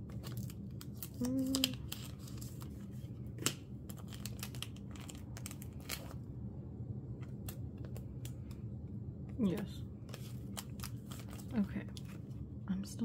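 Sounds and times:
plastic sleeves crinkling: 0.0 - 6.2, 9.4 - 12.4
steady low hum: 0.0 - 13.0.

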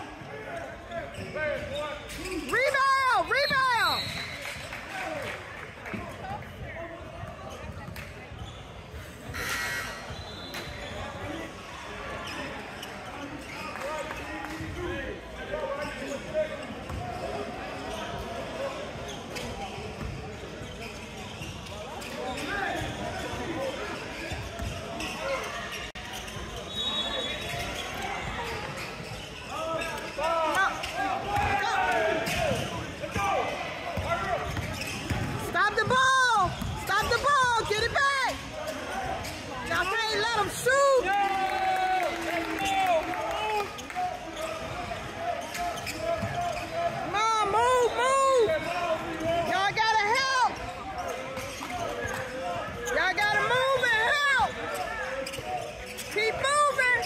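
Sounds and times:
sneakers squeaking on court: 0.2 - 4.8, 5.8 - 14.8, 15.7 - 41.0, 43.7 - 57.0.

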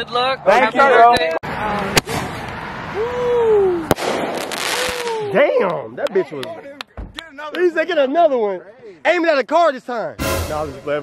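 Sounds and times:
firework bang: 3.9 - 5.2.

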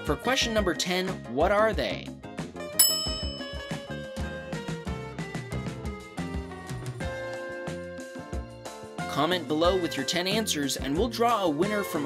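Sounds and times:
background music: 0.0 - 12.0
bright bell-like ding: 2.8 - 4.1.

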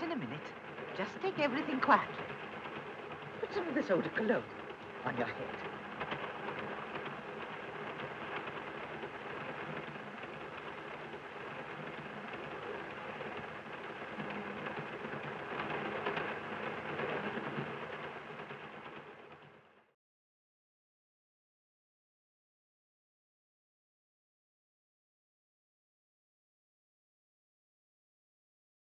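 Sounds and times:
steam train rumble and clatter: 0.0 - 19.9.

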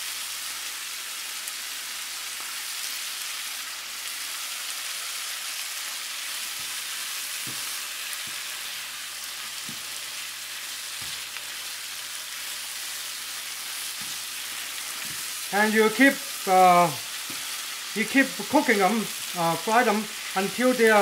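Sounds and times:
food sizzling in a frying pan: 0.0 - 21.0
spatula knocking on pan: 7.4 - 8.4.

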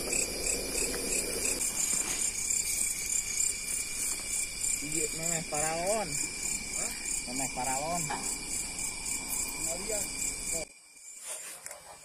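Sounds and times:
continuous insect trill: 0.0 - 12.0
crickets chirping: 0.0 - 12.0
rustle through grass: 0.9 - 4.6.

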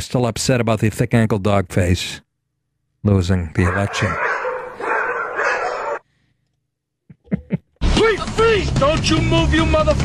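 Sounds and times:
dog vocalising: 3.6 - 6.0.

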